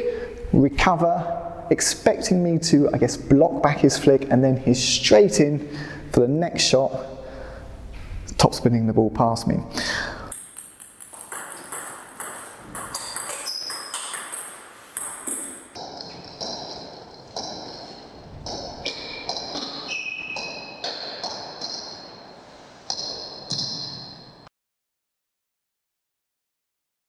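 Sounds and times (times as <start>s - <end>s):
table tennis ball ticking: 10.3s - 19.6s.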